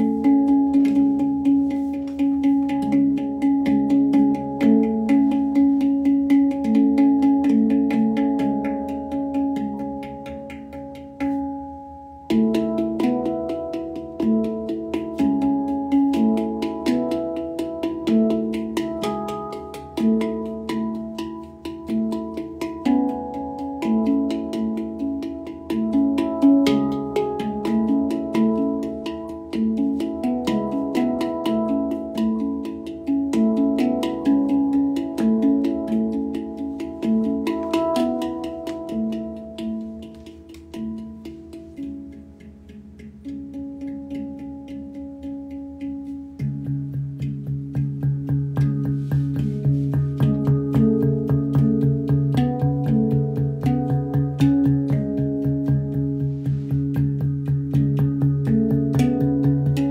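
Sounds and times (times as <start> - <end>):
handpan melody: 0.0 - 59.9.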